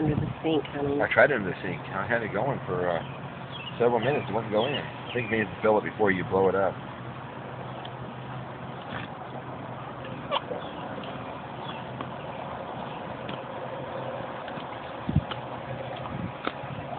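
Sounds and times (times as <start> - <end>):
pool water lapping and splashing: 0.0 - 16.9.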